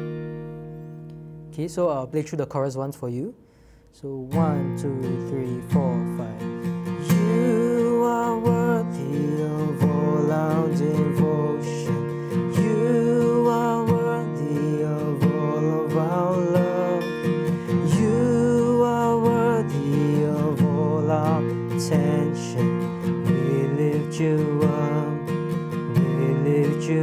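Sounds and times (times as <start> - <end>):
acoustic guitar strumming: 0.0 - 2.0, 4.2 - 27.0
man singing: 4.0 - 27.0.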